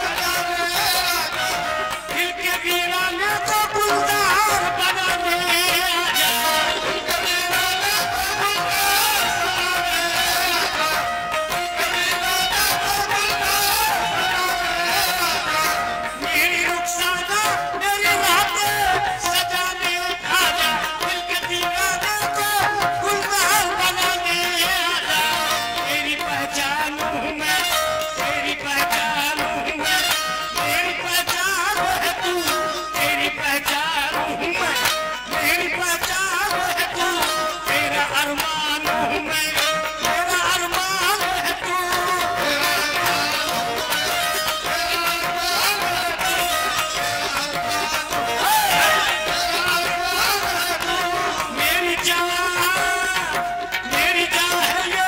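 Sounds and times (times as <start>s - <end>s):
harmonium playing held notes: 0.0s - 55.0s
men singing into microphones: 0.0s - 55.0s
wavering vocal melody: 0.0s - 55.0s.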